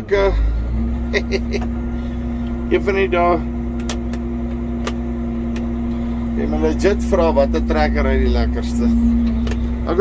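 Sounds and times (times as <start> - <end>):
diesel engine humming: 0.0 - 10.0.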